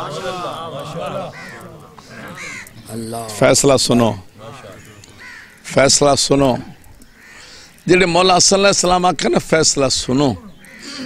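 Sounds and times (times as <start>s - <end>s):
crows cawing: 0.0s - 7.9s, 10.2s - 11.0s.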